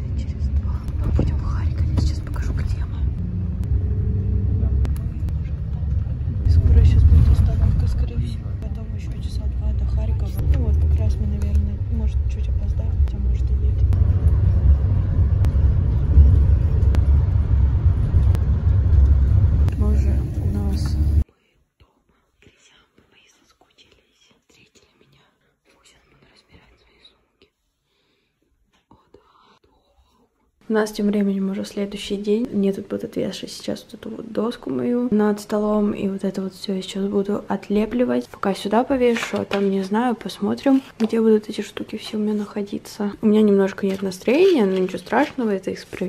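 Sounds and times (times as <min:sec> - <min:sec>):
bus rumbling from inside: 0:00.0 - 0:21.2.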